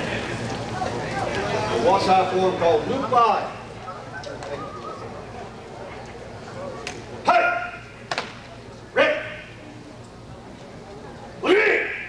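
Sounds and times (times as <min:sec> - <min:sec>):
room murmur: 0:00.0 - 0:12.0.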